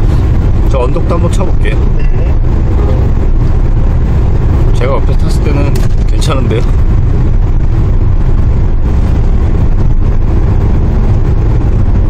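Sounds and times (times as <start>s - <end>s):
minivan engine rumble: 0.0s - 12.0s
road noise: 0.0s - 12.0s.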